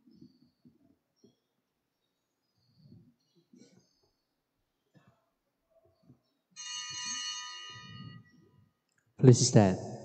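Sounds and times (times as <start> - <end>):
small bell ringing: 6.6 - 8.6.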